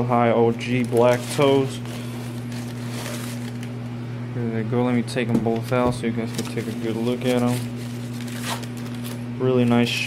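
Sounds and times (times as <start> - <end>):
low background hum: 0.0 - 10.0
tissue paper and cardboard rustling: 0.6 - 3.7, 6.2 - 9.2.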